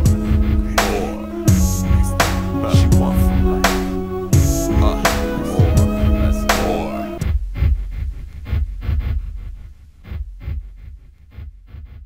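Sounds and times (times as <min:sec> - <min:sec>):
hip-hop drum beat: 0:00.0 - 0:09.4.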